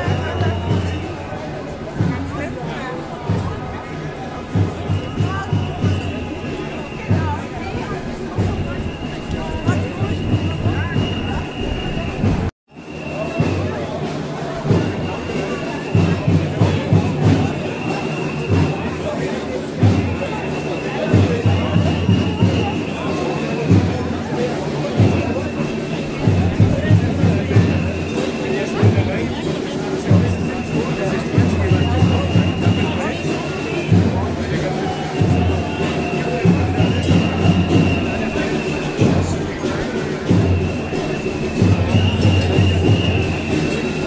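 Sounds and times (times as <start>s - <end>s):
crowd of marchers: 0.0s - 44.0s
low drum-like thumps: 4.4s - 12.5s.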